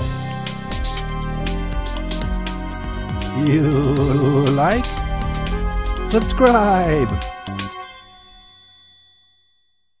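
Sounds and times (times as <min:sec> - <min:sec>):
bell-like ding: 0:07.7 - 0:10.0.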